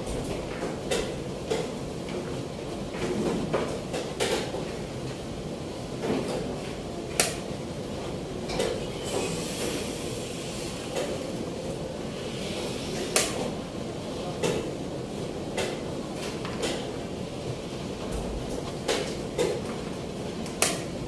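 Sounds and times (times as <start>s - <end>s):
room noise: 0.0s - 21.0s.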